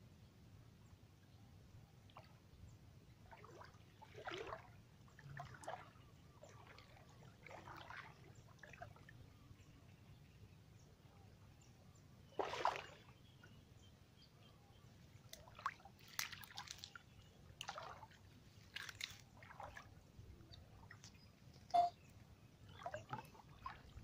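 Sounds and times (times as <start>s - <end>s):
water sloshing and splashing: 3.2s - 9.2s, 12.3s - 13.2s, 15.2s - 22.0s, 22.6s - 24.0s.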